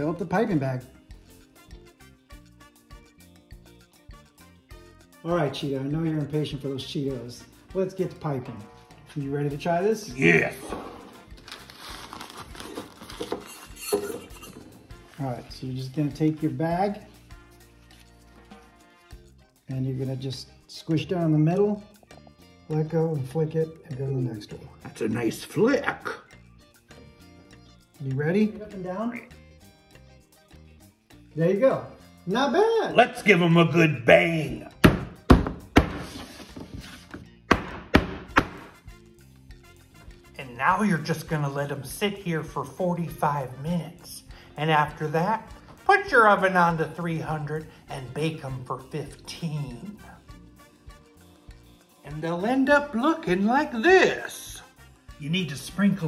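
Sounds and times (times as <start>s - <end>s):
piping bag crinkling: 11.2s - 13.6s.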